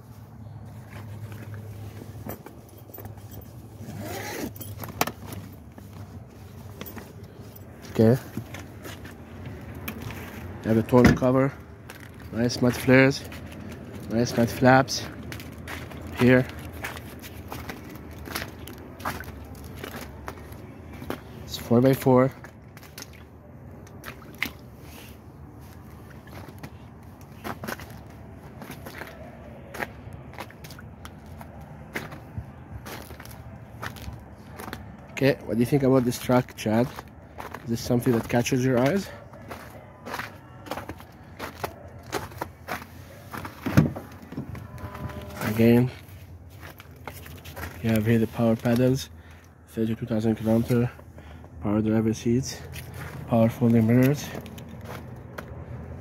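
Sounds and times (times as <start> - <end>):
footsteps crunching in slush: 0.0 - 11.0, 11.6 - 49.5, 52.6 - 56.0
truck door opening thump: 43.7 - 44.6.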